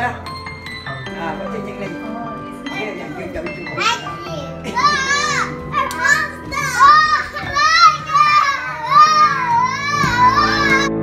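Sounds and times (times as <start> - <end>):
background music: 0.0 - 11.0
young children calling out: 3.8 - 11.0.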